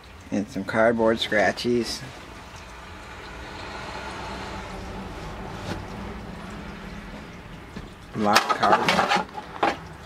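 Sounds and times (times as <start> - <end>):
loud car going by: 2.3 - 8.0.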